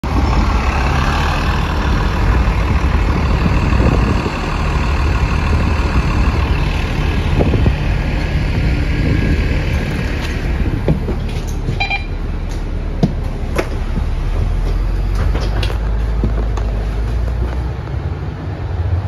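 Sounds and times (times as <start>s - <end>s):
bus engine idling: 0.0s - 19.0s
bus pulling in and stopping: 0.0s - 19.0s.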